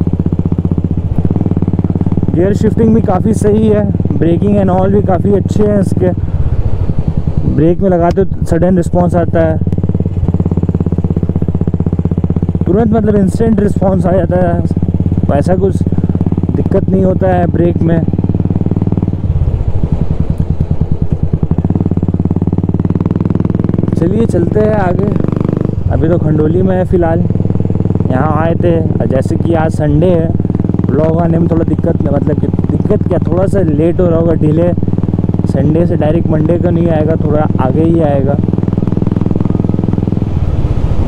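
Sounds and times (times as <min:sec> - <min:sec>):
motorcycle engine running: 0:00.0 - 0:41.0.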